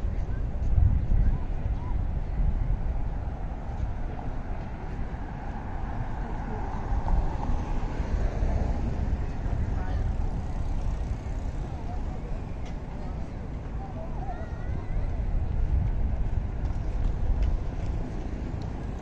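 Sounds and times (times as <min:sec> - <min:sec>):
indistinct voices of passers-by: 0:00.0 - 0:19.0
steady low rumble: 0:00.0 - 0:19.0.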